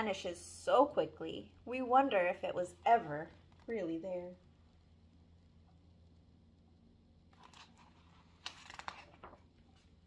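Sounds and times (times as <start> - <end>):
book page turning: 7.3 - 10.0.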